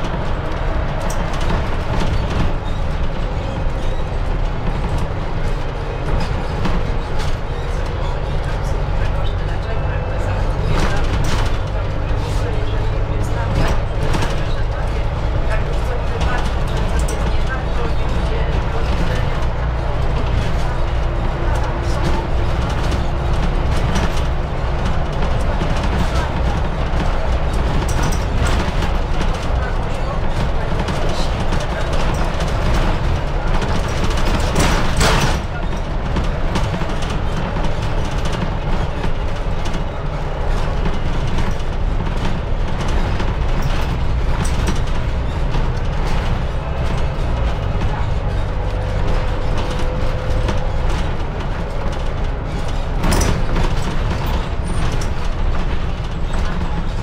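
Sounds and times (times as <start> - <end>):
clatter: 0.0 - 57.0
diesel engine drone: 0.0 - 57.0
road noise: 0.0 - 57.0.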